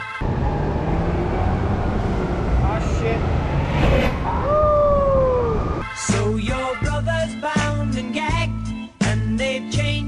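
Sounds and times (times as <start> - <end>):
city traffic rumble: 0.0 - 5.8.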